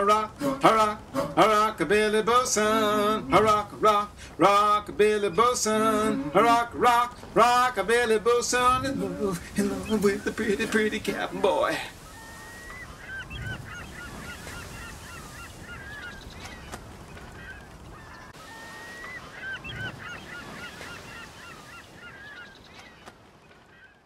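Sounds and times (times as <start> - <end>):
steady hiss: 0.0 - 13.0
birds honking and squawking: 0.0 - 24.0.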